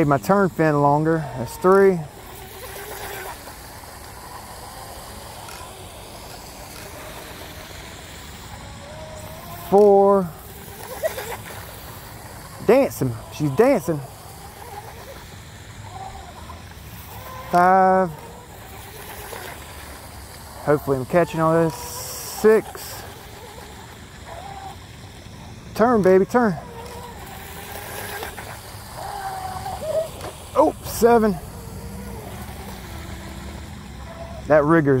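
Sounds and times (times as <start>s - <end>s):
electric motor whining: 0.0s - 35.0s.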